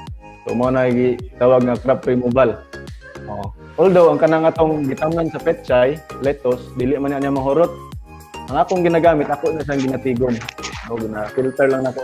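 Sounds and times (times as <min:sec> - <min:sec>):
man speaking over video call: 0:08.5 - 0:12.0.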